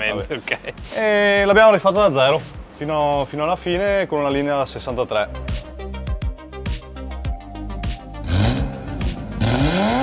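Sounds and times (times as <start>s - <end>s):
car engine revving: 8.2s - 10.0s.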